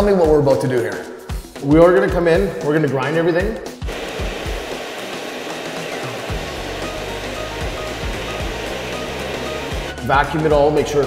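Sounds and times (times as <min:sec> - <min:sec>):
floor grinder whirring: 0:03.9 - 0:10.0.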